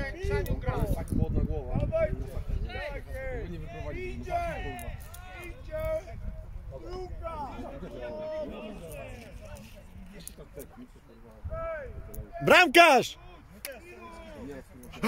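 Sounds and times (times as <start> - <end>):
voices calling across a pitch: 1.8 - 15.0.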